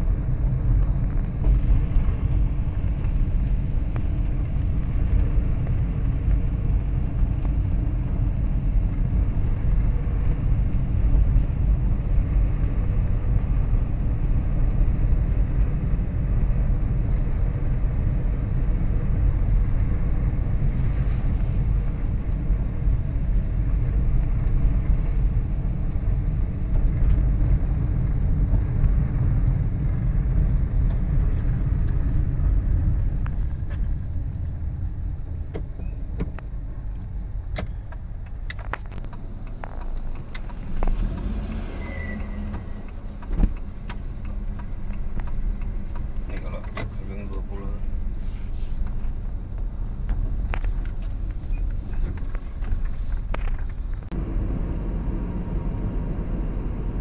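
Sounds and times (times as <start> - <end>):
vehicle road and engine rumble: 0.0 - 57.0.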